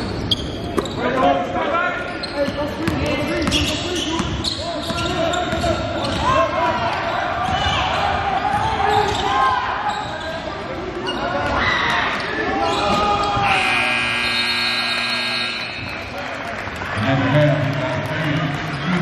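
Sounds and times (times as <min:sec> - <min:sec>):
sneakers squeaking: 0:00.0 - 0:01.2, 0:01.9 - 0:16.2
steady held tone: 0:13.5 - 0:16.0.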